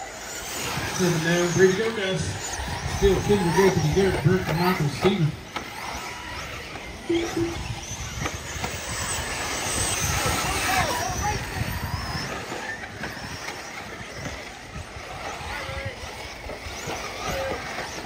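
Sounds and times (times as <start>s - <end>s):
rc car engines buzzing: 0.0s - 18.0s.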